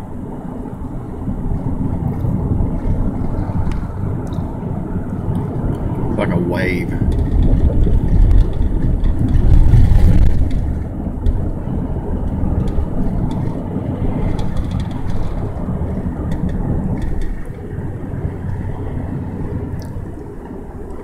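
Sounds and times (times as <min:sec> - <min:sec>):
car road and wind rumble: 0:00.0 - 0:21.0.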